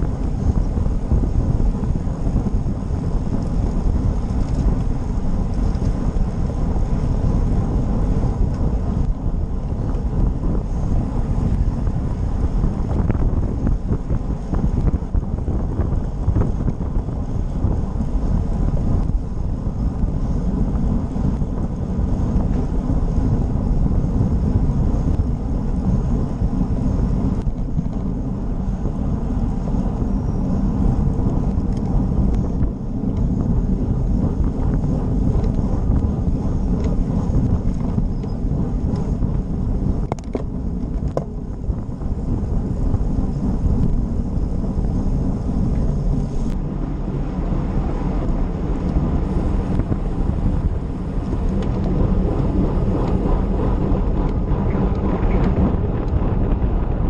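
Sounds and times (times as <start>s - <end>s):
road and tyre noise: 0.0s - 57.0s
wind buffeting microphone: 0.0s - 57.0s.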